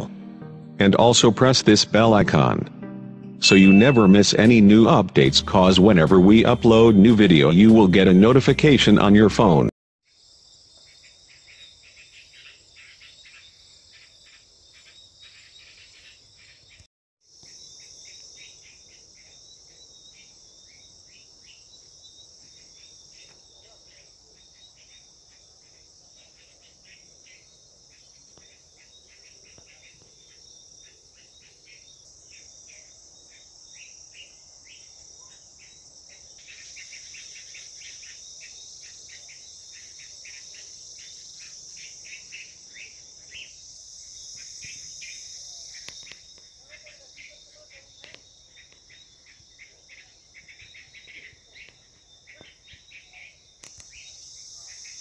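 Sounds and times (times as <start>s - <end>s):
insects chirping: 10.0s - 55.0s
insects buzzing: 10.1s - 55.0s.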